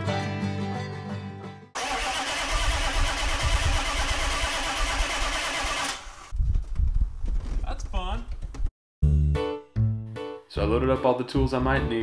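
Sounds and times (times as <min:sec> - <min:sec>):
vehicle engine starting and running: 0:01.8 - 0:06.4.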